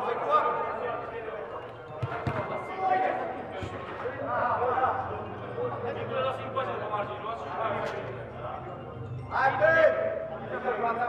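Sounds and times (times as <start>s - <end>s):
players' voices in hall: 0.0s - 11.0s
football kick thuds: 2.0s - 2.6s.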